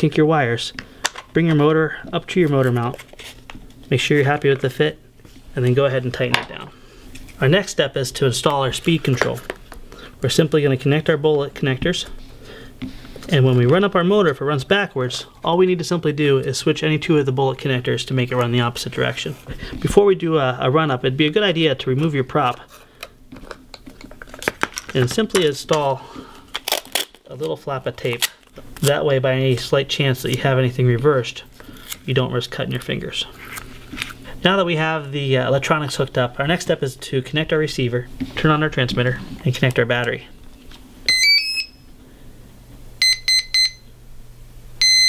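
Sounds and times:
long electronic beep: 41.1s - 41.8s, 43.0s - 43.8s, 44.8s - 45.0s
short electronic beeps: 41.1s - 41.8s, 43.0s - 43.8s, 44.8s - 45.0s.

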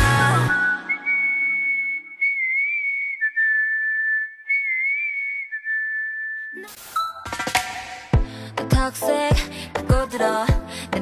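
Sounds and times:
pop song: 0.0s - 1.8s, 7.3s - 11.0s
whistled melody: 0.0s - 8.1s.

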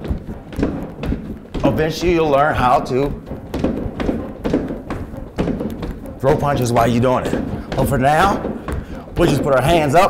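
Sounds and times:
footsteps on plastic step platform: 0.0s - 10.0s.

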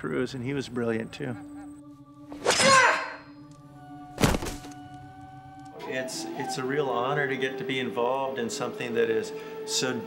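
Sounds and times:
sustained soundtrack music: 0.0s - 10.0s.

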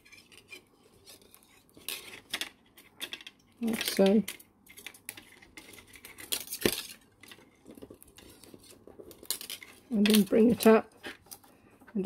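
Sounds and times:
wire ticks and scrapes: 0.0s - 12.0s.

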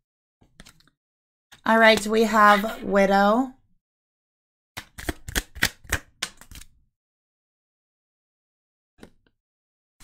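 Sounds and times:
cards clicking and tapping on table: 4.8s - 6.7s.

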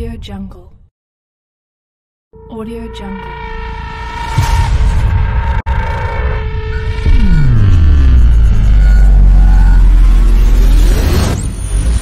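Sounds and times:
deep bass drone: 2.4s - 12.0s.

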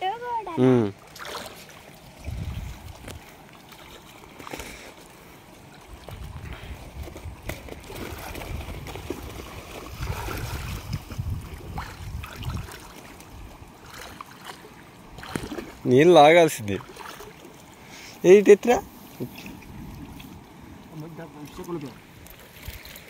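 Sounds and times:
stream water sloshing and trickling: 0.0s - 23.0s
small splashes: 0.5s - 18.2s, 19.0s - 23.0s.

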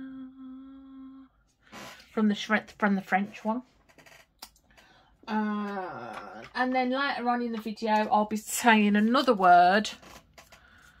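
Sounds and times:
woman humming low note: 0.0s - 1.3s.

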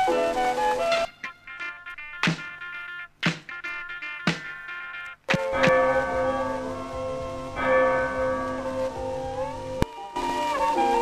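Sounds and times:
church bell ringing: 5.4s - 9.8s.

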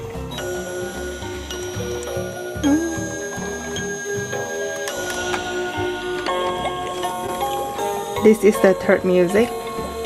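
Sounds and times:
electronic lullaby melody: 0.0s - 10.0s.

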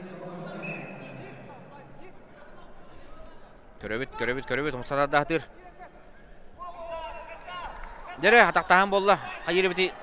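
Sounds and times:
faint hall noise: 0.0s - 10.0s.

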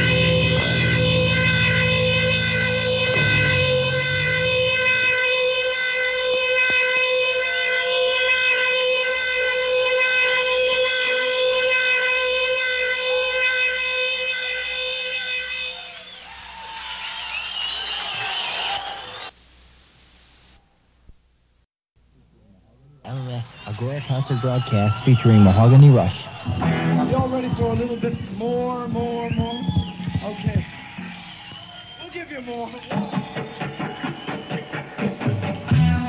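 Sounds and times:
low bass notes: 0.0s - 5.7s, 25.5s - 31.6s, 35.4s - 36.0s
electric guitar feedback note: 0.0s - 16.1s, 24.6s - 36.0s
high wavering squeals: 0.0s - 19.3s, 23.6s - 35.0s.

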